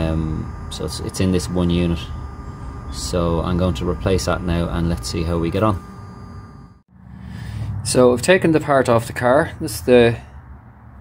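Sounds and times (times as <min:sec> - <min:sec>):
man speaking: 0:00.0 - 0:02.2, 0:02.9 - 0:05.8, 0:07.9 - 0:10.2.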